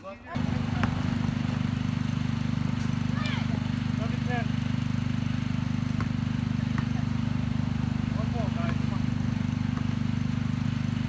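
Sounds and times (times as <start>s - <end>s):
basketball bouncing on asphalt: 0.4s - 11.0s
low mechanical drone: 0.4s - 11.0s.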